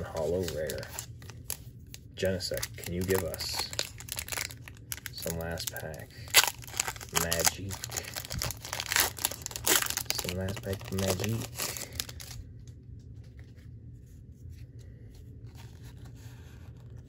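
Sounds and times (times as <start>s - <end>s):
foil wrapper tearing and crinkling: 0.0s - 12.4s.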